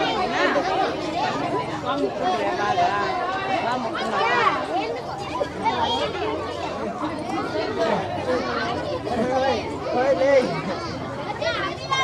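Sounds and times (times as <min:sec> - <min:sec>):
children and adults chattering: 0:00.0 - 0:12.0.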